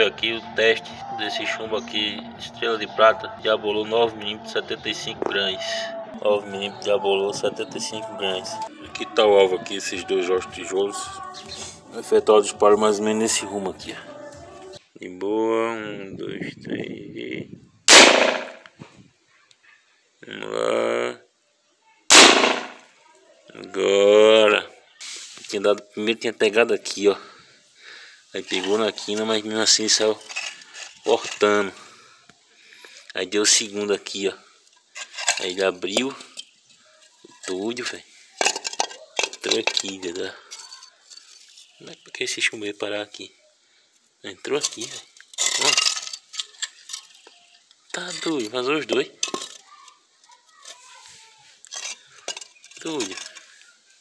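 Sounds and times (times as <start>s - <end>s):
air rifle shot: 17.9s - 18.6s, 22.1s - 22.8s.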